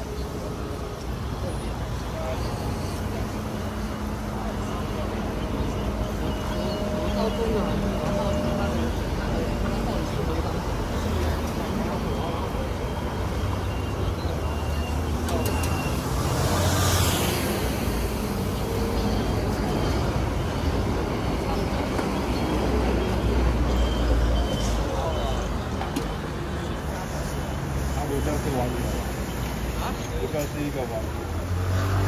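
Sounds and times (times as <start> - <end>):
traffic running close by: 0.0 - 32.0.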